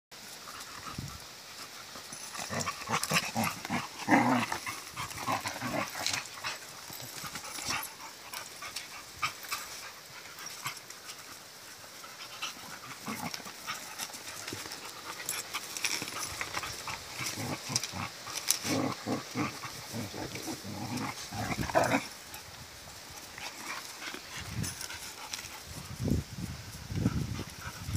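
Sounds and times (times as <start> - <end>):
dogs play-fighting: 0.3 - 26.0, 26.9 - 27.9.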